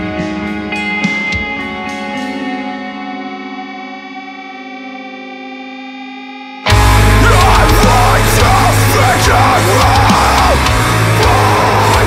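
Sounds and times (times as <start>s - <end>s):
heavy metal band playing: 6.6s - 12.0s.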